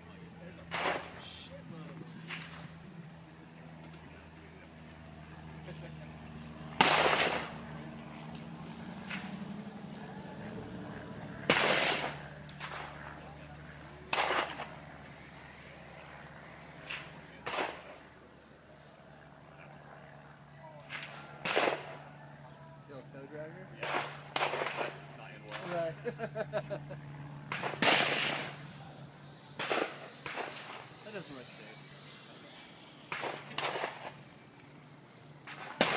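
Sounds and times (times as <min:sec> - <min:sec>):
gunshots with echo: 0:06.8 - 0:07.6, 0:11.4 - 0:13.0, 0:14.1 - 0:14.7, 0:20.9 - 0:22.0, 0:23.8 - 0:25.0, 0:27.5 - 0:28.6, 0:29.6 - 0:30.9, 0:33.1 - 0:34.2, 0:35.4 - 0:35.9.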